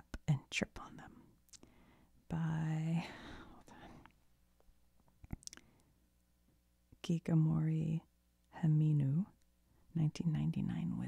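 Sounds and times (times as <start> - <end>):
woman whispering softly: 0.0 - 1.3, 2.3 - 4.1.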